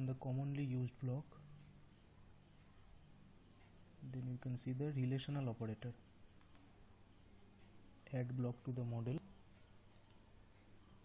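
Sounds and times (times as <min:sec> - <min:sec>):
computer mouse clicks: 0:06.4 - 0:06.7, 0:09.8 - 0:10.3.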